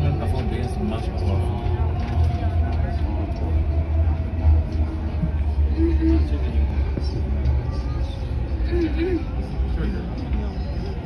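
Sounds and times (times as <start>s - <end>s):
train car rumbling: 0.0s - 11.0s.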